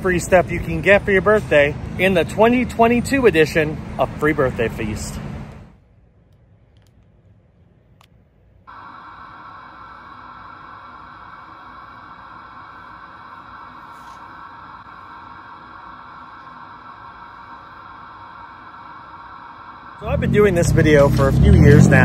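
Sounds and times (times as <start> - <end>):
television static hiss: 8.7 - 22.0.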